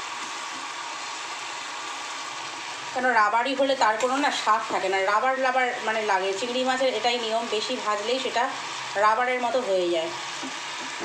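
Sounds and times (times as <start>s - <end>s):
prawns sizzling in hot oil: 0.0s - 11.0s.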